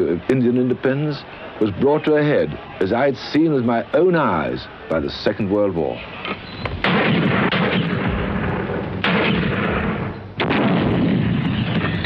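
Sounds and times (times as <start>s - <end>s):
heavy artillery blasts: 6.8s - 12.0s.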